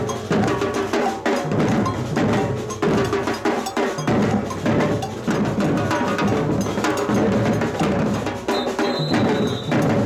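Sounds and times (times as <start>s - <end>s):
marching drums playing: 0.0s - 10.0s.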